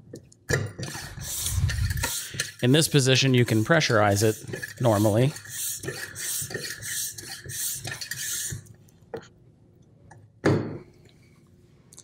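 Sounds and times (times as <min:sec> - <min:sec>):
plastic rubbing on plastic: 0:00.8 - 0:08.6.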